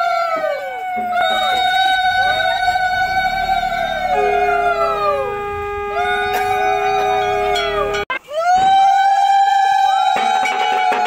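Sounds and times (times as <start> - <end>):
conch shells blowing long notes: 0.0 - 8.2
steady low conch note: 0.1 - 8.1.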